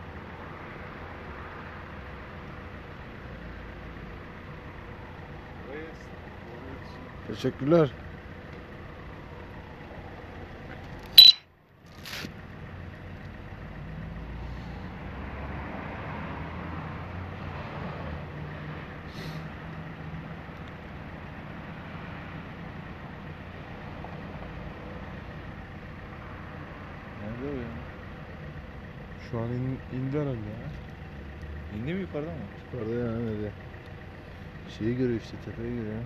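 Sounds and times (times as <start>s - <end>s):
faint low engine drone: 0.0s - 16.0s, 18.1s - 36.0s
traffic noise: 0.0s - 36.0s.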